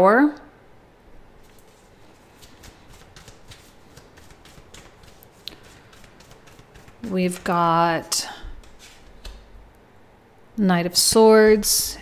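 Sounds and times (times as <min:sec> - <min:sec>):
cards being shuffled: 0:01.4 - 0:09.6.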